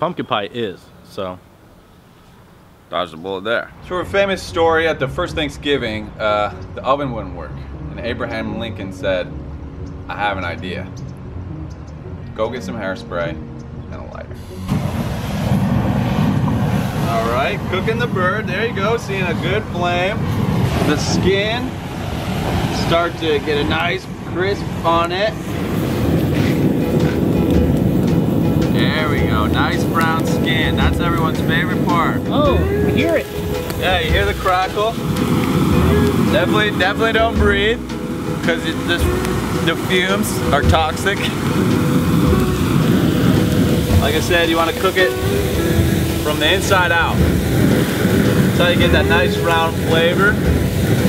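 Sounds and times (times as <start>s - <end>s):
rushing aerosol flame jet: 14.4s - 51.0s.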